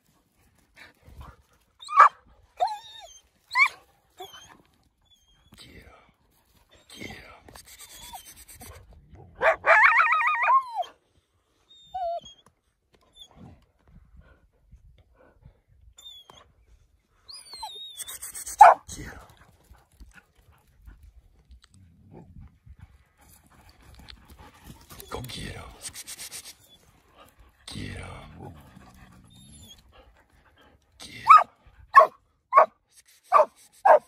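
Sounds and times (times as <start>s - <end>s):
dog yelping with high squeaks: 1.8s - 4.5s, 7.8s - 8.6s, 17.4s - 18.8s, 31.3s - 32.7s, 33.3s - 34.0s
dogs whining: 1.8s - 5.6s, 11.7s - 12.5s, 17.3s - 18.8s, 28.8s - 29.9s.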